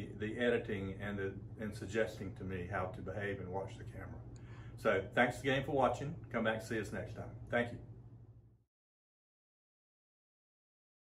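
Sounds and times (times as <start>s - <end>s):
faint low room hum: 0.0s - 8.7s.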